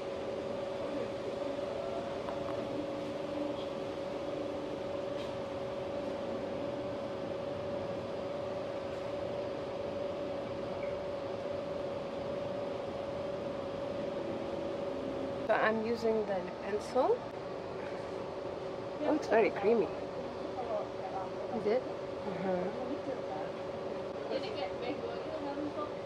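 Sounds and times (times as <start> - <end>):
steady mechanical hum: 0.0 - 26.0.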